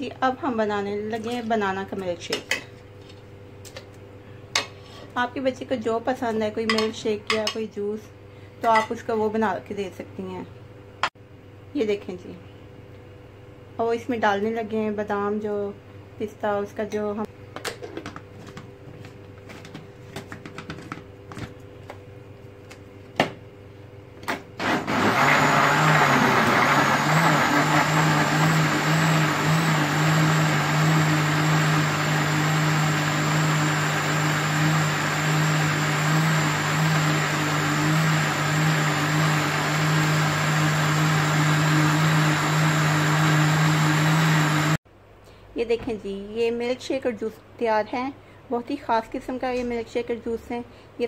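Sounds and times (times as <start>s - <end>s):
electric blender motor running: 24.6s - 44.8s.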